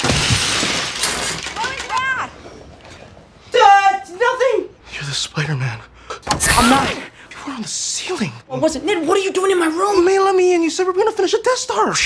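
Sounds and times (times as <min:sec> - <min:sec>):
plastic bricks clattering: 0:00.0 - 0:02.3.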